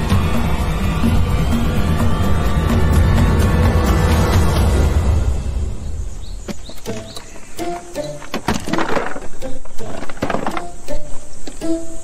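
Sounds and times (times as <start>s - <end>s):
tense background music: 0.0s - 8.2s.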